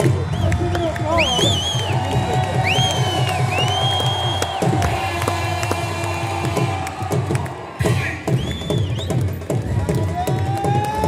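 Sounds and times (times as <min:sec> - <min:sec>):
stadium crowd cheering: 0:00.0 - 0:11.0
loud music with steady beat: 0:01.5 - 0:11.0.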